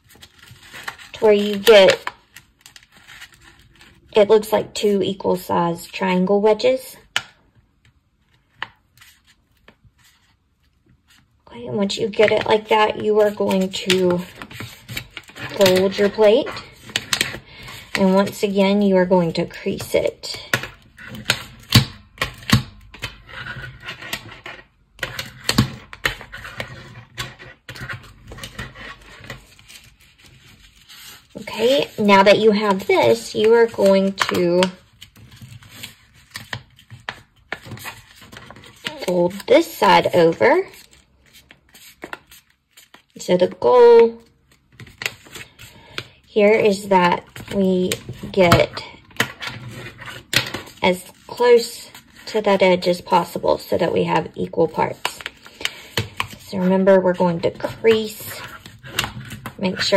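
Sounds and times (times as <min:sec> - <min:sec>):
paper plate rustling and crackling: 0:00.0 - 0:04.2, 0:08.2 - 0:18.6, 0:20.2 - 0:59.9
pencil scraping paper plate: 0:23.2 - 0:34.8.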